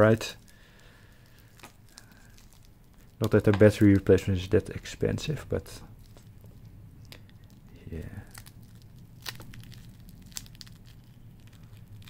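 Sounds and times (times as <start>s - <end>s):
plastic film crinkling: 0.0s - 12.0s.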